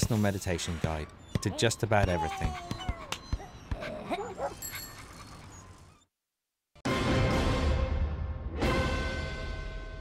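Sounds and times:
cartoon dog yelping: 1.4s - 4.7s.

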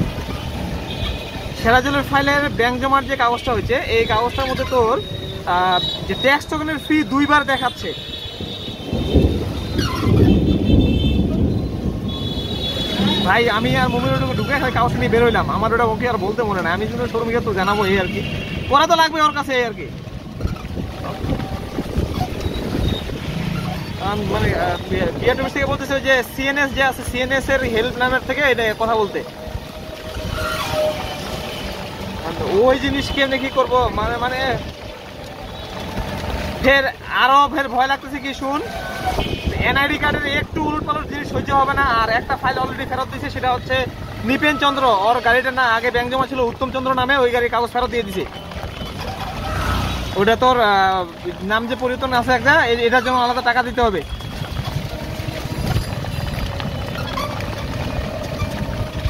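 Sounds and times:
rain: 0.0s - 59.0s
tyre noise on wet road: 0.0s - 59.0s
wind buffeting microphone: 8.2s - 15.7s, 19.9s - 25.8s, 38.6s - 44.3s, 54.0s - 59.0s.

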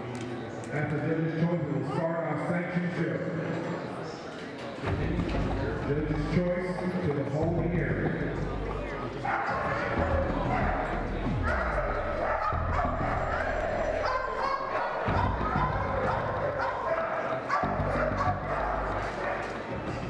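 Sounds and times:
voices: 0.0s - 20.0s
background music: 4.8s - 20.0s
dogs barking and yipping: 9.2s - 19.8s.

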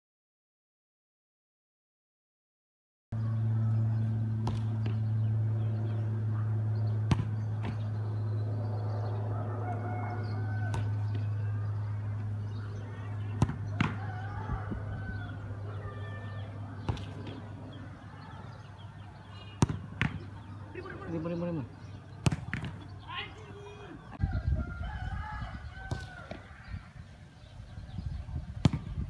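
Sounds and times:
low hum: 3.2s - 23.1s
football kick thuds: 7.1s - 7.8s, 22.2s - 22.9s, 28.6s - 29.0s
rooster crowing in distance: 9.0s - 11.8s, 13.7s - 16.6s, 24.1s - 26.9s.

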